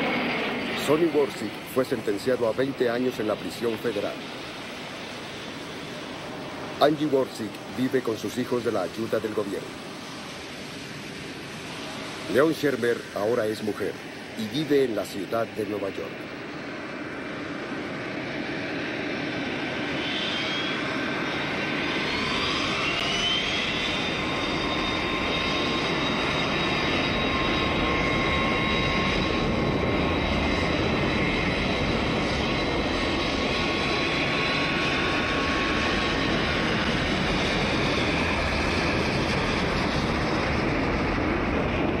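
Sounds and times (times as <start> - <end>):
high engine whine: 0.0 - 42.0
jet engines roaring: 0.0 - 42.0.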